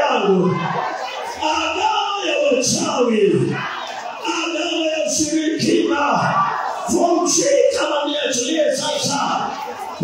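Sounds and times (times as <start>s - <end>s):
crowd voices: 0.0s - 10.0s
person shouting through loudspeakers: 0.0s - 10.0s.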